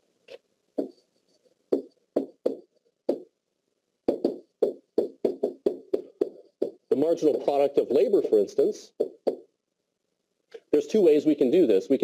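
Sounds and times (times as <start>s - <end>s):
pen tapping on whiteboard: 0.8s - 1.0s, 1.7s - 3.3s, 4.1s - 6.8s, 9.0s - 9.5s.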